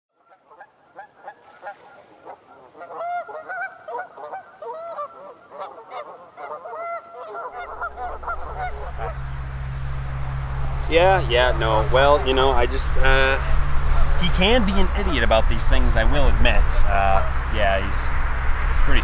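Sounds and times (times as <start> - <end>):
geese honking: 0.2 - 17.5
steady low hum: 7.6 - 19.0.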